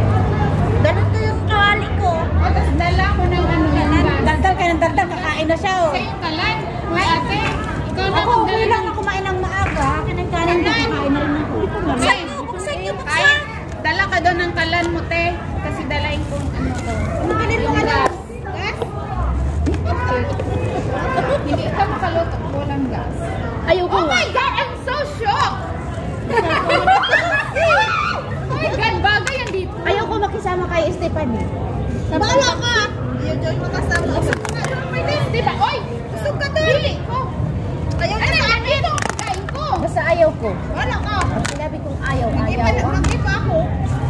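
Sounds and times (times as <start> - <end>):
chatter of voices: 0.0 - 44.0
women talking excitedly: 0.0 - 44.0.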